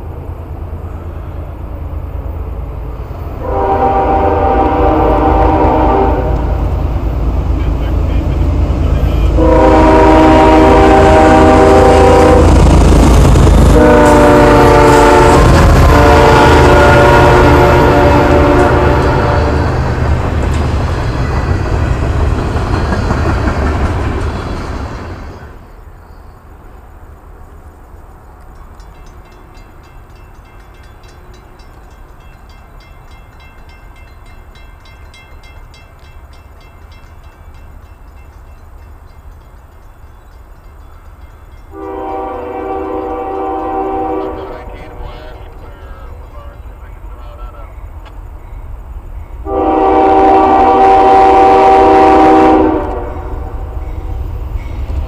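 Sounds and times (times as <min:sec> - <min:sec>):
train engine and wheel rumble: 0:00.0 - 0:55.0
locomotive air horn blasts: 0:03.4 - 0:06.8, 0:09.0 - 0:12.7, 0:13.6 - 0:20.0, 0:41.7 - 0:45.3, 0:49.4 - 0:53.7.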